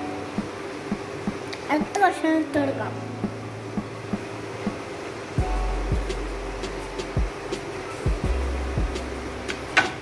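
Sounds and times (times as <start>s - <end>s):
background music with bass and drums: 5.4s - 10.0s.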